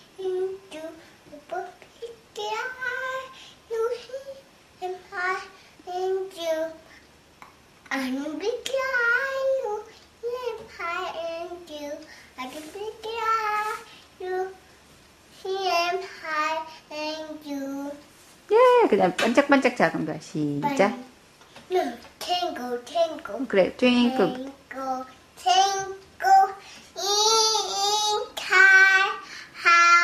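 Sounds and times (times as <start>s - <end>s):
toddler singing: 0.0s - 6.9s, 7.9s - 14.7s, 15.4s - 18.1s, 21.7s - 23.4s, 24.0s - 30.0s.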